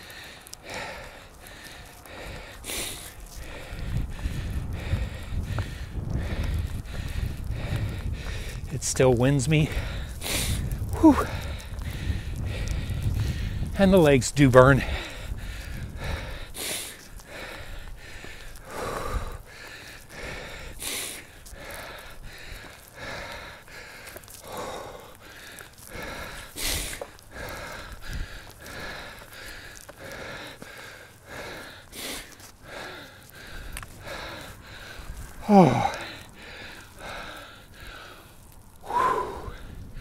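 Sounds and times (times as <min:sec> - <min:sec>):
man breathing hard: 0:00.0 - 0:13.9, 0:14.6 - 0:40.0.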